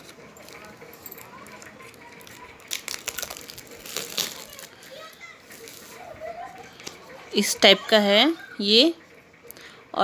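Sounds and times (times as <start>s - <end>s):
plastic wrap rustling: 0.0s - 6.6s
distant children playing: 0.1s - 9.9s.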